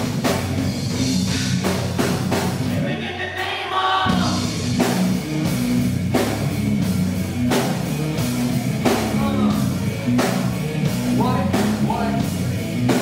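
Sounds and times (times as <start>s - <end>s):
bass guitar: 0.0s - 13.0s
drum kit: 0.0s - 13.0s
electric guitar: 4.0s - 13.0s.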